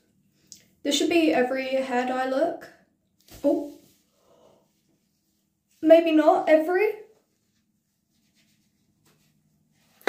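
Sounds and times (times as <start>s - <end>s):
faint scratchy rubbing of hair: 3.2s - 10.0s.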